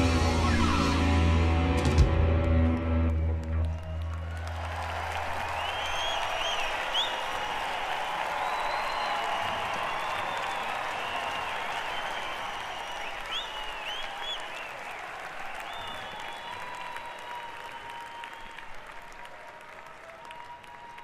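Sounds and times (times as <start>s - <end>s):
audience applauding and cheering: 1.9s - 21.0s
shrill whistles: 5.4s - 18.8s.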